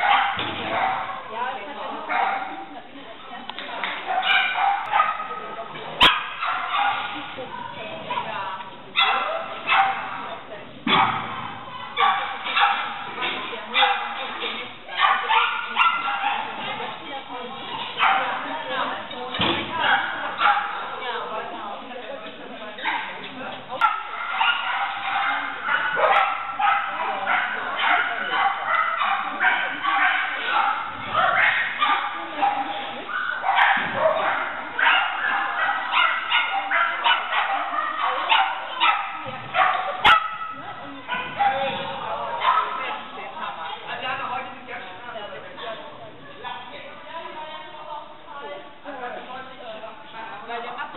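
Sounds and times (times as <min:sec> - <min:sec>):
dog barking in high-pitched yips: 0:00.0 - 0:01.2, 0:04.1 - 0:05.4, 0:06.0 - 0:07.2, 0:10.9 - 0:13.0, 0:15.0 - 0:16.6, 0:23.8 - 0:41.6.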